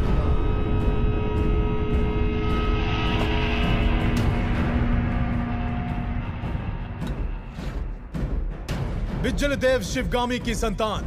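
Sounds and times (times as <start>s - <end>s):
low drum rumble: 0.0s - 9.2s.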